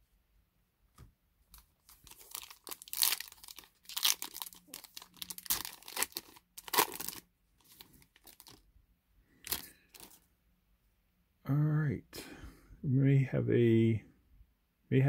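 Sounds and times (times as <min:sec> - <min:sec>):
foil wrapper tearing and crinkling: 0:01.8 - 0:08.6, 0:09.4 - 0:10.2.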